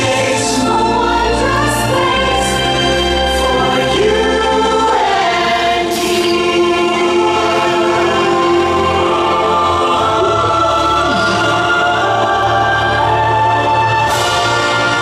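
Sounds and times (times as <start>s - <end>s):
choir singing sustained chords: 0.0s - 15.0s.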